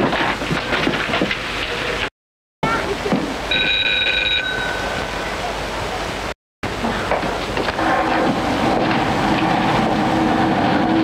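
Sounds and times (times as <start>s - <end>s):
bell ringing: 3.5s - 5.3s.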